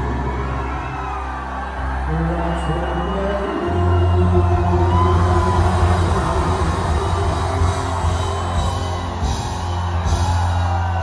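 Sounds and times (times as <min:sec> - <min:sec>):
deep bass: 0:03.7 - 0:11.0
live rock band playing: 0:04.4 - 0:11.0.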